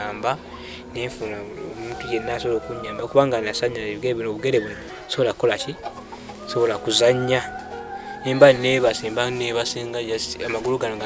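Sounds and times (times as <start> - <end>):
background music: 0.0 - 11.0
rooster crowing: 1.6 - 4.0, 4.6 - 9.5.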